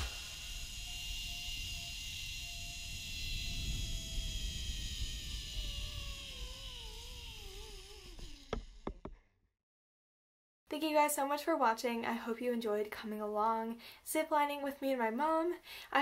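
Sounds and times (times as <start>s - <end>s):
zipline pulleys whining on cable: 0.0s - 9.0s.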